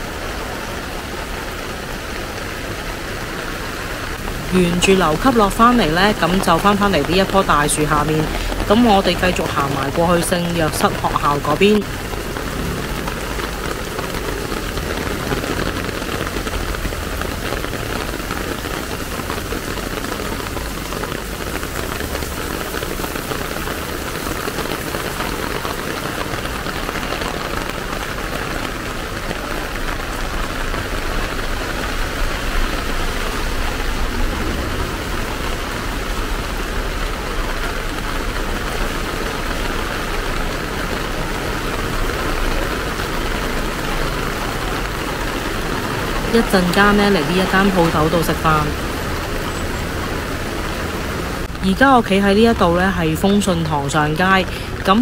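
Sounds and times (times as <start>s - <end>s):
heavy rain on pavement: 0.0s - 55.0s
vehicles passing on wet road: 0.0s - 55.0s.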